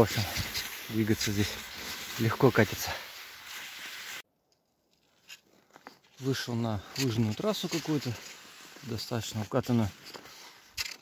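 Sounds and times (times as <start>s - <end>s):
steady outdoor hiss: 0.0s - 4.2s.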